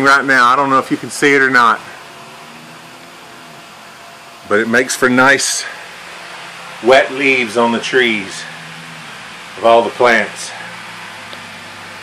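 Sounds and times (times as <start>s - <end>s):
small fan humming: 0.0s - 12.0s
misting system hissing: 0.4s - 12.0s.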